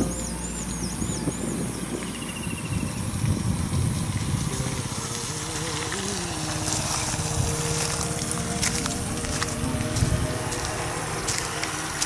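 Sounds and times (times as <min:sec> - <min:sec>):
wavering background music: 0:00.0 - 0:03.1, 0:04.8 - 0:12.0
vehicle rumble: 0:00.0 - 0:12.0
wind noise: 0:00.0 - 0:12.0.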